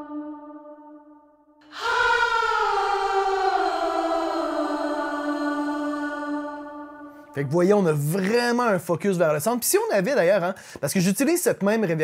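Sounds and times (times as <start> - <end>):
reverberant backing vocals: 0.0 - 8.4.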